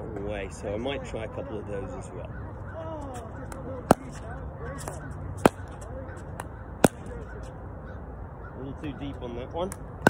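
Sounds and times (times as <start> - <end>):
pickleball pops against paddle: 6.4 - 7.1.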